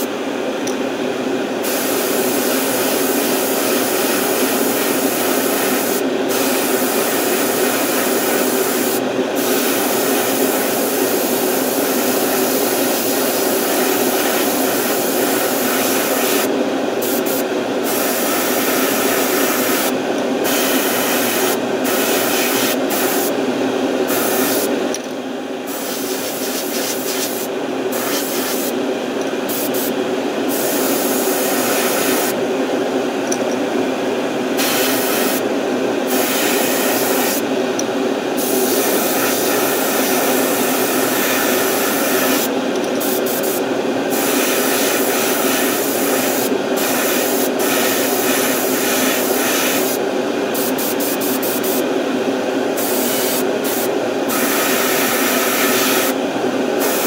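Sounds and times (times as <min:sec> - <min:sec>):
steady hum: 0:00.0 - 0:57.0
airbrush spraying: 0:01.6 - 0:23.4, 0:24.1 - 0:24.7, 0:25.7 - 0:28.8, 0:29.5 - 0:29.9, 0:30.5 - 0:32.4, 0:34.6 - 0:35.4, 0:36.1 - 0:37.4, 0:38.4 - 0:50.0, 0:50.6 - 0:51.8, 0:52.8 - 0:56.2, 0:56.8 - 0:57.0.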